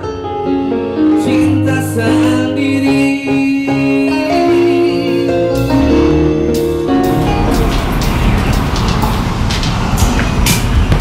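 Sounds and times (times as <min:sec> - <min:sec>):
live band keyboard music: 0:00.0 - 0:11.0
low rumble of traffic: 0:06.9 - 0:11.0.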